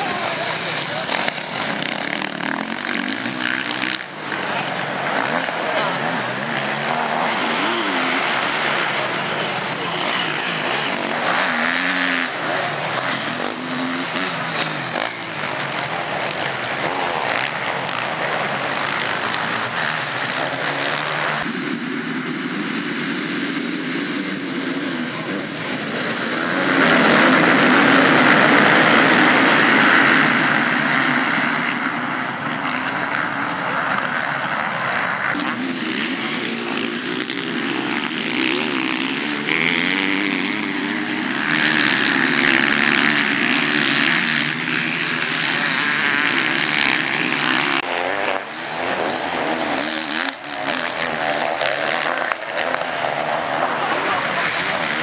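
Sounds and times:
dirt bike engines revving: 0.0s - 55.0s.

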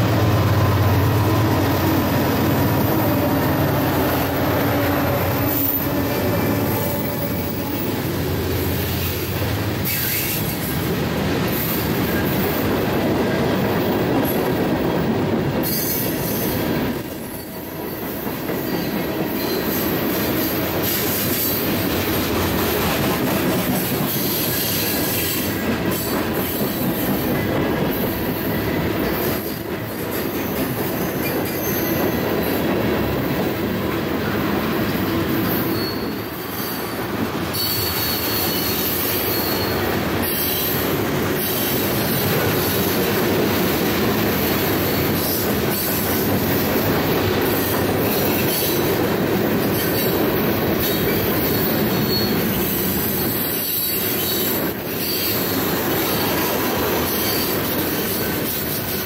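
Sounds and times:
freight train cars rolling past: 0.0s - 59.0s.

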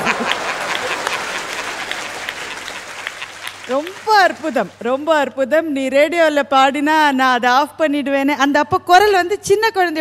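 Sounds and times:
audience applause: 0.0s - 5.2s
woman speaking: 3.7s - 10.0s.

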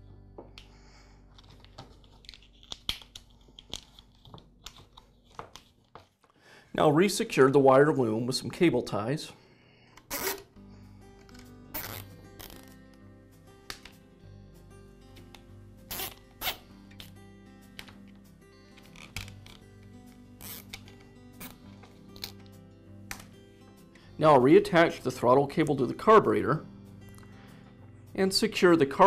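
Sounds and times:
soft background music: 0.0s - 5.8s, 6.7s - 29.0s
cable ties ratcheting zips: 10.0s - 10.5s, 11.2s - 12.8s, 15.9s - 17.2s, 18.7s - 22.5s.

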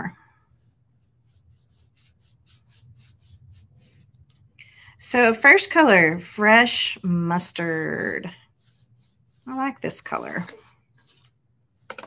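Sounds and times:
paintbrush strokes on wood: 0.0s - 11.9s.

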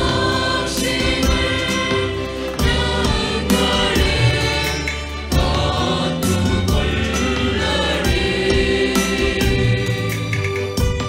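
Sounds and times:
instrumental backing with bass line: 0.0s - 11.0s
mixed choir singing in harmony: 0.0s - 11.0s.

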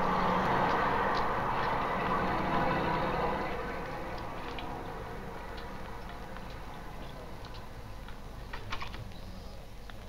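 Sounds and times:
traffic hum: 0.0s - 10.0s.

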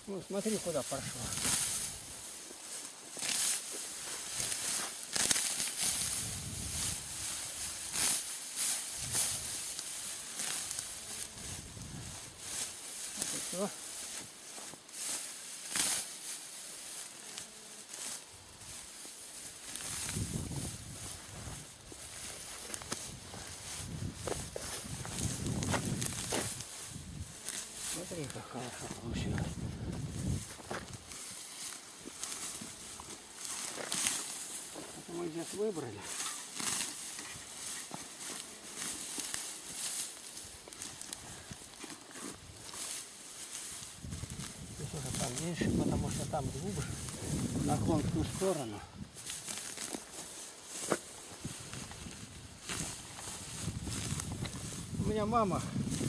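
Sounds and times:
dry grass rustling and tearing: 0.0s - 56.0s.

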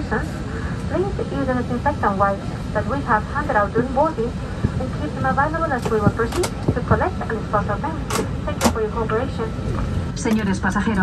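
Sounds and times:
aircraft cabin low hum: 0.0s - 11.0s.

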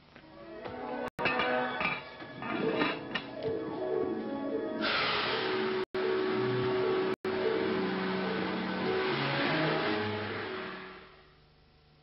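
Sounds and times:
steady rushing roar: 6.0s - 11.2s.

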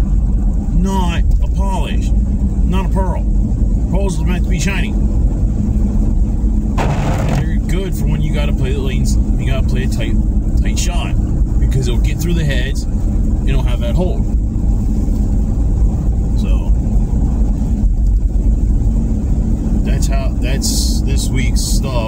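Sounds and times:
car rumble from inside cabin: 0.0s - 22.0s
man talking: 7.2s - 12.8s, 19.9s - 22.0s.

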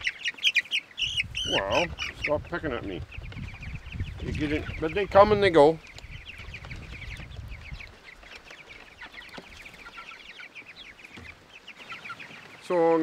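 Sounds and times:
chicks peeping: 0.0s - 13.0s.

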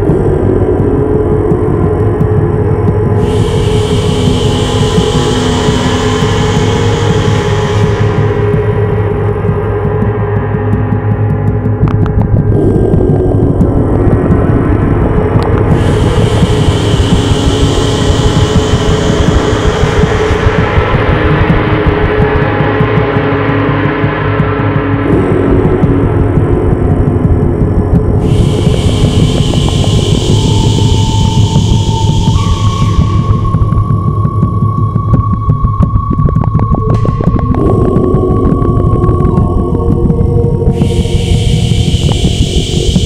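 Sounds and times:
gong wash drone: 0.0s - 43.0s
high shimmer: 3.2s - 9.0s.

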